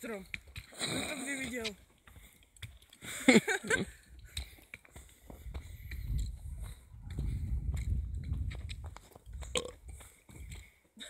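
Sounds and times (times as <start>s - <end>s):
footsteps on forest path: 0.0s - 11.0s.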